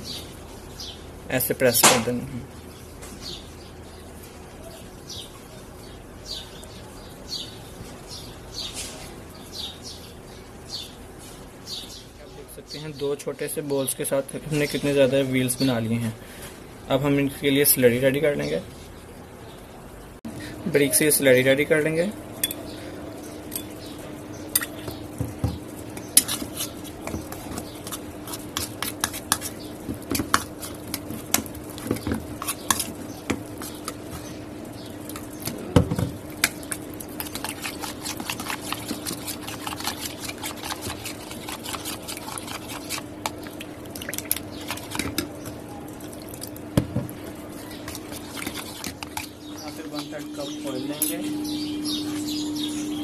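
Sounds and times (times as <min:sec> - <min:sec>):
steady low hum: 0:18.7 - 0:53.0.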